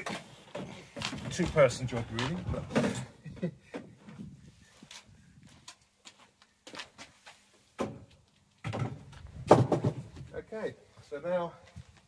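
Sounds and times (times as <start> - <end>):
loud thud on ground: 8.7 - 10.1.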